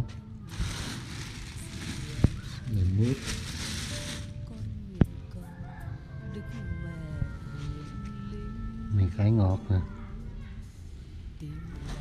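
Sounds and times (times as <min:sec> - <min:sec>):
plastic bags rustling: 0:00.4 - 0:04.6.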